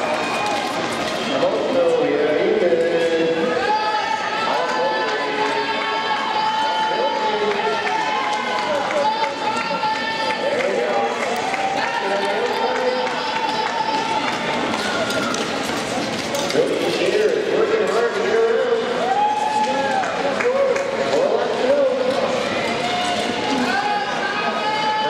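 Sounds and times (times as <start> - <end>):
spectators calling out and cheering: 0.0 - 25.0.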